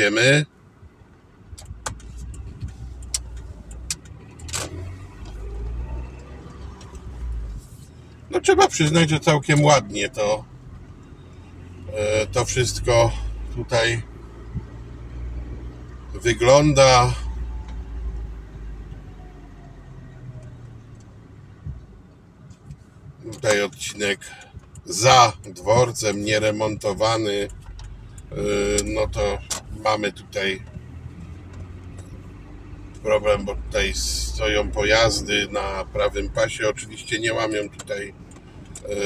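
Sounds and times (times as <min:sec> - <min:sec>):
car engine and road noise: 0:00.0 - 0:39.0.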